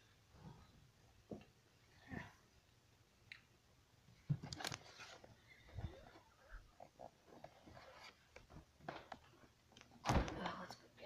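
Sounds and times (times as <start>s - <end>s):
camera being moved: 4.4s - 6.2s, 7.4s - 8.5s.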